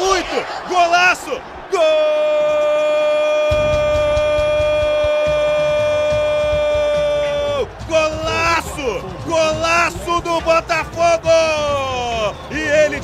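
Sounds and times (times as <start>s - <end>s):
commentator shouting goal cry: 0.0s - 13.0s.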